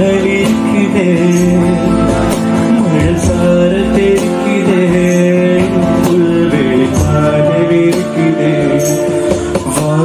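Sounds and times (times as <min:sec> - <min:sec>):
folk band accompaniment: 0:00.0 - 0:10.0
man singing long held notes: 0:02.7 - 0:10.0.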